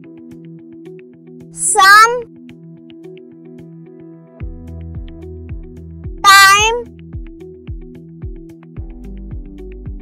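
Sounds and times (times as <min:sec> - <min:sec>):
cat meow: 0:01.6 - 0:02.2, 0:06.3 - 0:06.8
background music with beat: 0:02.3 - 0:06.2, 0:06.8 - 0:10.0.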